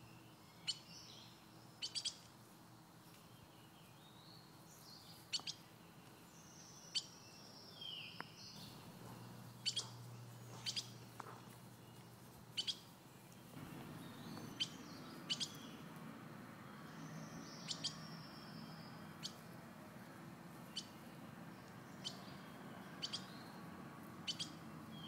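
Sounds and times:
soft steady noise: 0:00.0 - 0:25.0.

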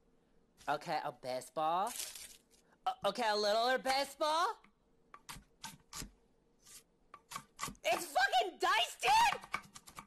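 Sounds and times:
knife cutting onto chopping block: 0:05.2 - 0:07.8.

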